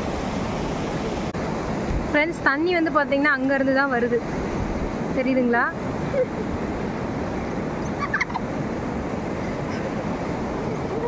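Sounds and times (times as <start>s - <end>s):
river water rushing over weir: 0.0s - 11.0s.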